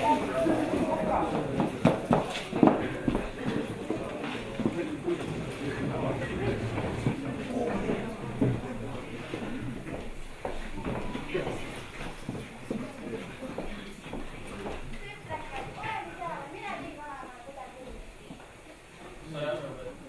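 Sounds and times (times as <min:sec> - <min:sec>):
people speaking: 0:00.0 - 0:20.0
high-heeled footsteps on wooden floor: 0:01.3 - 0:04.8, 0:09.8 - 0:15.9.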